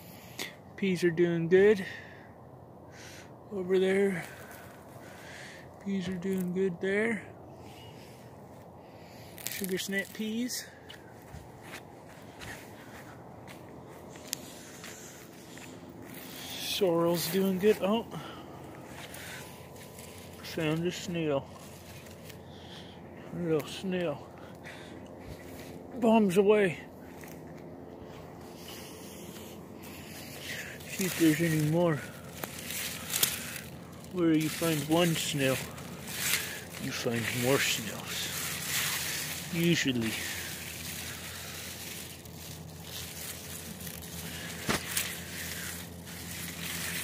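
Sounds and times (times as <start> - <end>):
leaves and stems rustling: 4.0 - 6.8, 7.6 - 47.0
footsteps on soil: 8.4 - 47.0.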